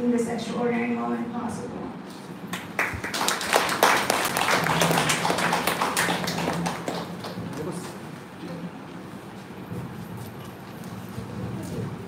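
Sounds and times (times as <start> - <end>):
people applauding: 2.5 - 8.3.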